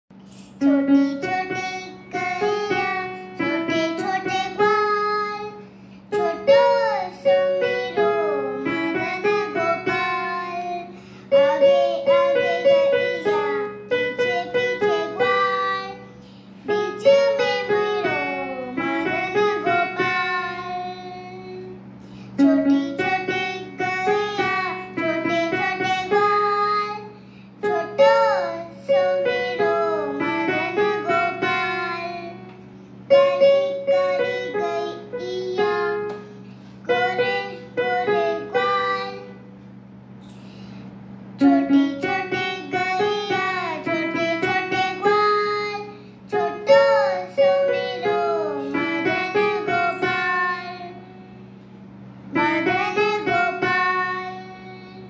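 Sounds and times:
steady low hum: 0:00.1 - 0:55.0
child singing devotional song: 0:00.3 - 0:32.5, 0:33.1 - 0:39.5, 0:41.4 - 0:51.2, 0:52.3 - 0:55.0.

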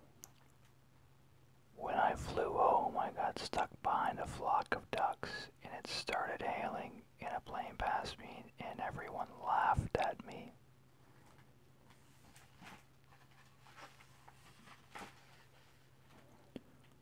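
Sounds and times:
person whispering: 0:01.8 - 0:10.6.

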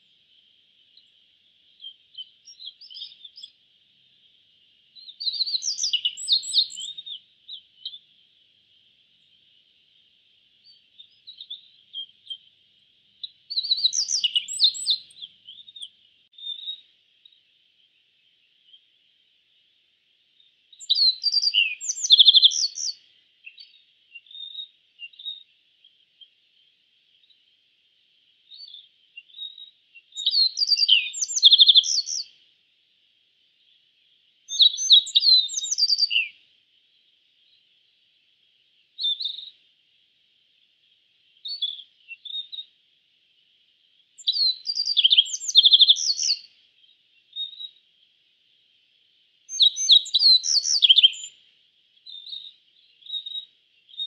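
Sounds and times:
faint high hiss: 0:00.0 - 0:54.0
bunting singing high chirps: 0:13.2 - 0:17.4, 0:44.2 - 0:46.5, 0:49.5 - 0:51.4.

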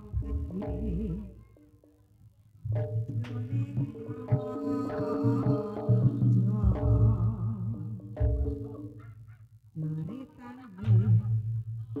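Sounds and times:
nasal wavering melody: 0:02.7 - 0:09.3.

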